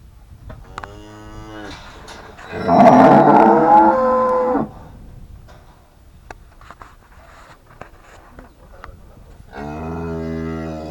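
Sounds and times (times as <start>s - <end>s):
cow mooing: 2.5s - 4.8s.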